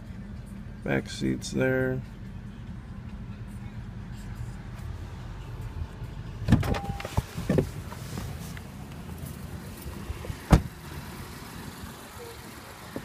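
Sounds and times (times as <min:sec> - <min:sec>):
car door shutting thud: 0:06.4 - 0:07.8, 0:10.2 - 0:10.8
car door opening: 0:06.4 - 0:08.7, 0:09.8 - 0:10.8.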